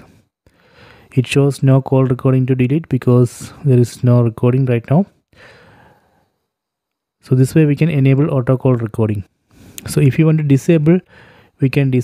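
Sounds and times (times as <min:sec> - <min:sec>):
soft breath out: 0:00.0 - 0:01.1, 0:05.3 - 0:06.6, 0:11.1 - 0:11.6.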